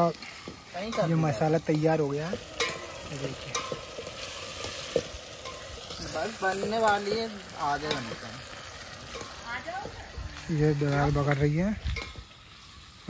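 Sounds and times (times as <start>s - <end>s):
spices sizzling: 0.0s - 13.0s
spoon knocking pot: 3.5s - 4.1s.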